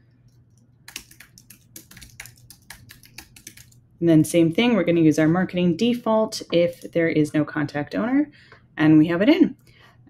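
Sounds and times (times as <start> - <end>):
computer keyboard typing: 0.3 - 3.8.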